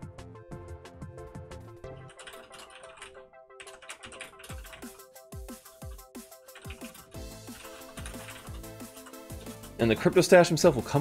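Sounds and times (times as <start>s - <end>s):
rapid keyboard typing: 2.0s - 10.2s
electronic music with held chords: 3.2s - 11.0s.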